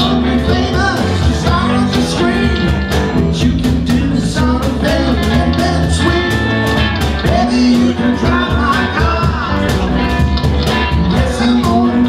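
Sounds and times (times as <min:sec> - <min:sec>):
electric guitars: 0:00.0 - 0:12.0
person singing: 0:00.0 - 0:12.0
steady drum beat: 0:00.0 - 0:12.0.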